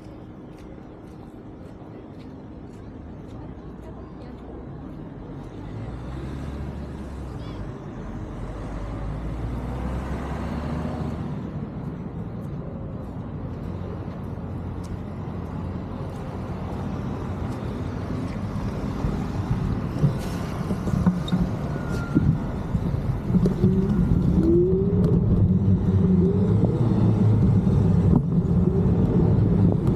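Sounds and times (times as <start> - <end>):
road traffic rumble: 0.0 - 29.9
vehicle passing: 8.1 - 12.0, 13.7 - 29.9.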